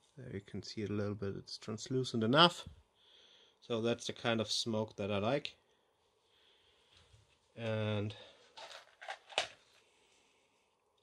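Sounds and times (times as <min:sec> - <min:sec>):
gloves rustling: 0:06.8 - 0:10.3.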